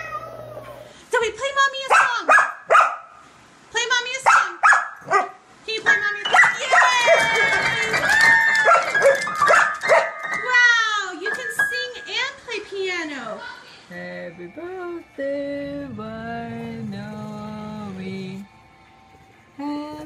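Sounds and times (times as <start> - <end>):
dog howling: 0.0 - 0.9, 6.4 - 10.2
dog yipping and barking: 1.9 - 3.1, 4.2 - 5.4, 6.3 - 7.4, 8.6 - 10.2
piano notes: 5.9 - 12.7.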